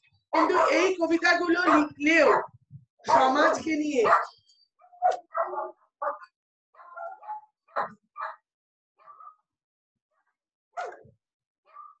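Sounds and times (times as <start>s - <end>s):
dog barking: 0.4s - 1.0s, 1.6s - 8.4s, 9.0s - 9.4s, 10.8s - 11.1s, 11.7s - 12.0s.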